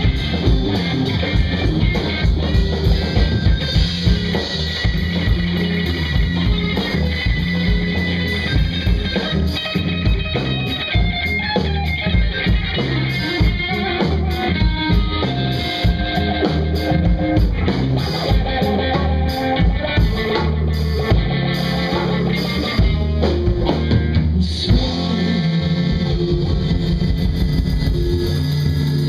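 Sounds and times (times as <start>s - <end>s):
bass guitar: 0.0s - 29.0s
drum kit: 0.0s - 29.0s
electric guitar: 0.0s - 29.0s.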